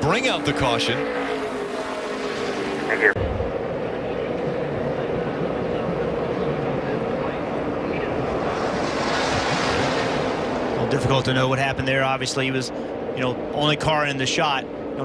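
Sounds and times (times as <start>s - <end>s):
stock car engines roaring: 0.0s - 15.0s.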